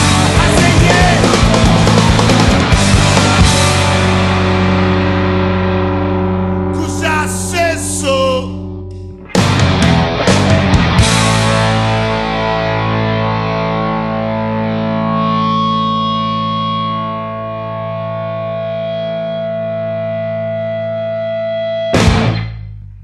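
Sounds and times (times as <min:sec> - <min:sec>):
full-band crashing hit: 0:00.0 - 0:05.7, 0:09.3 - 0:12.4, 0:22.0 - 0:22.8
distorted electric guitar chord: 0:00.0 - 0:22.8.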